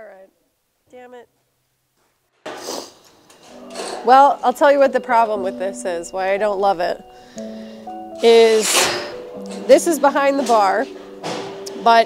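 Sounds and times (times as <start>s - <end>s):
music: 3.3s - 12.0s
rustling scrape: 8.2s - 9.2s.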